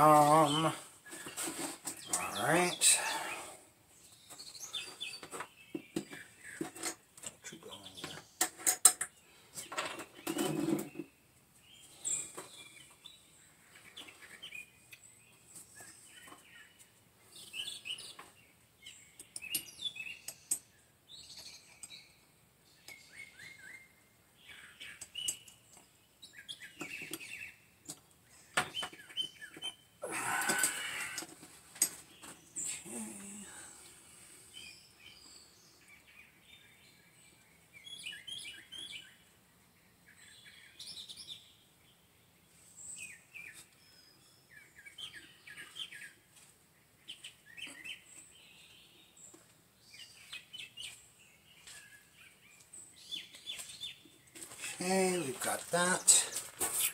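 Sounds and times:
birds chirping: 0:00.0 - 0:56.9.

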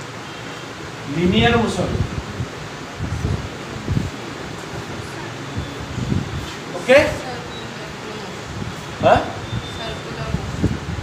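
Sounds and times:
steady room hiss: 0:00.0 - 0:11.0.

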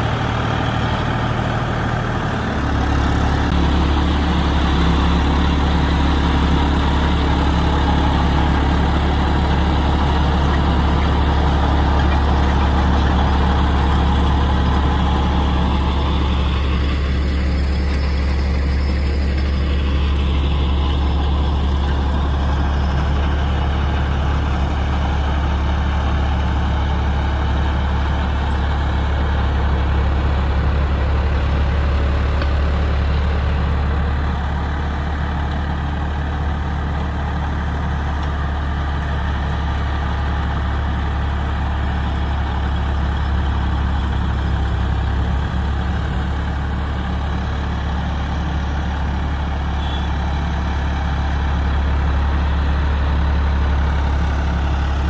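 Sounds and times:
tractor diesel engine droning: 0:00.0 - 0:55.0.

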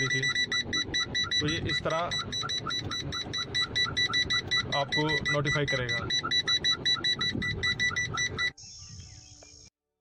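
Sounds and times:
parking sensor beeping rapidly: 0:00.0 - 0:08.6.

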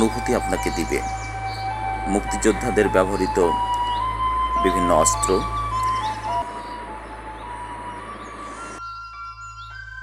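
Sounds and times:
bird chirps: 0:00.0 - 0:10.0
soft flute-like music: 0:00.0 - 0:10.0.

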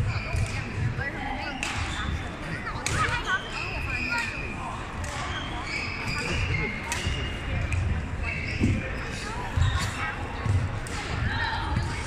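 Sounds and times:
shoes squeaking on court floor: 0:05.1 - 0:10.7.

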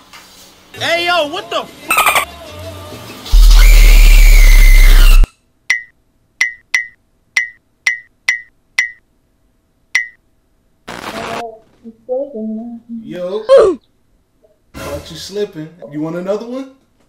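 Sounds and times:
loud distorted shriek: 0:03.4 - 0:05.3
sharp clicks with high ping: 0:05.7 - 0:09.0, 0:10.0 - 0:10.2.

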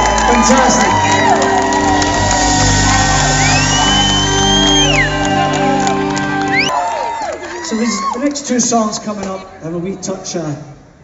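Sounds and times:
crowd cheering: 0:00.0 - 0:09.6
live rock band chord: 0:01.0 - 0:06.7.

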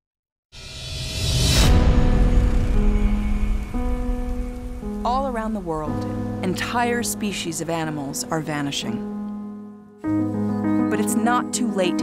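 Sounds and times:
deep low rumble: 0:00.9 - 0:07.0
sustained musical chord: 0:01.6 - 0:12.0.

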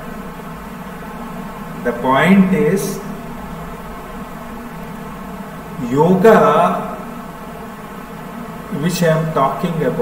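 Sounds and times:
low buzzing hum: 0:00.0 - 0:10.0
man speaking: 0:01.9 - 0:03.1, 0:05.8 - 0:07.1, 0:08.7 - 0:10.0.

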